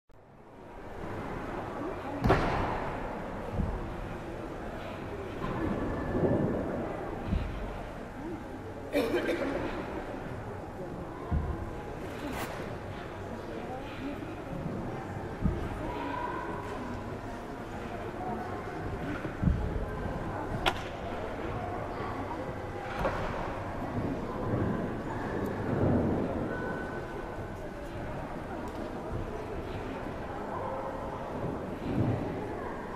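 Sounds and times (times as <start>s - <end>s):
sports hall rumble and murmur: 0.2s - 32.9s.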